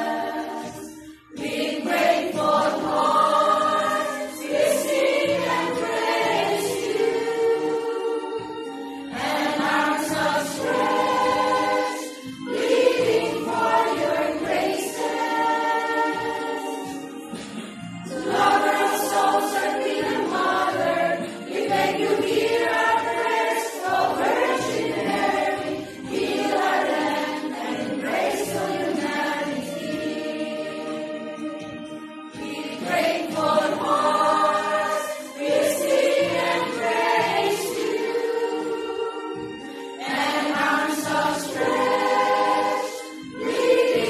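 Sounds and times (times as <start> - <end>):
choir singing a hymn: 0.0 - 44.0.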